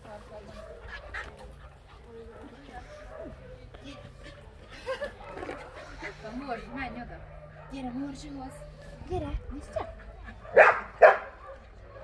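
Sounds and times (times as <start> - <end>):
young dog barking: 9.7 - 12.0.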